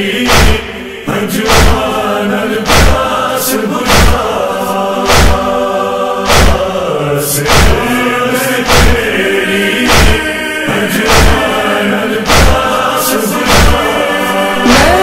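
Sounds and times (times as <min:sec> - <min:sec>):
chorus chanting a lament: 0:00.0 - 0:15.0
chest-beating thumps: 0:00.3 - 0:00.7, 0:01.5 - 0:01.9, 0:02.6 - 0:03.1, 0:03.8 - 0:04.2, 0:05.1 - 0:05.4, 0:06.3 - 0:06.7, 0:07.5 - 0:07.8, 0:08.6 - 0:09.0, 0:09.9 - 0:10.2, 0:11.1 - 0:11.4, 0:12.2 - 0:12.6, 0:13.5 - 0:13.8.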